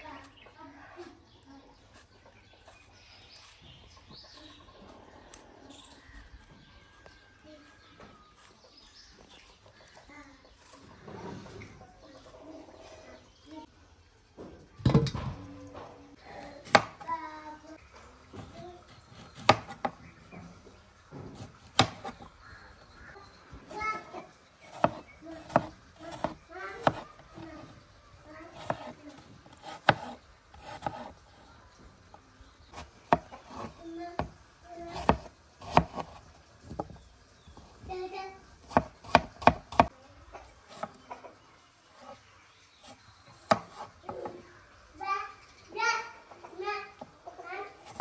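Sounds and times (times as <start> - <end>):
birds chirping: 0.0 - 48.0.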